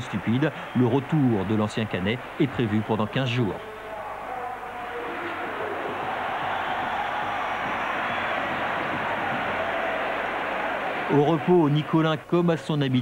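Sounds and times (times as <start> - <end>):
stadium crowd roar: 0.0 - 12.7.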